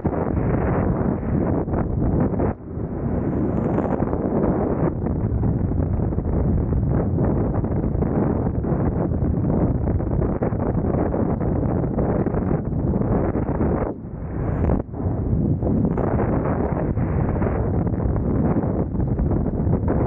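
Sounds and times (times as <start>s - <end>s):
wind rushing over microphone: 0.0s - 20.0s.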